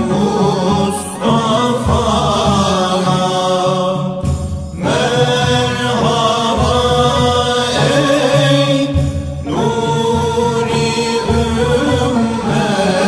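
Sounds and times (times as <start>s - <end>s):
male voices chanting a hymn: 0.0s - 13.0s.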